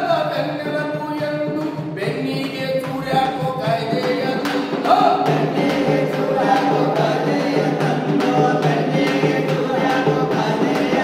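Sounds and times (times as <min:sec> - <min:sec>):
group of voices singing: 0:00.0 - 0:11.0.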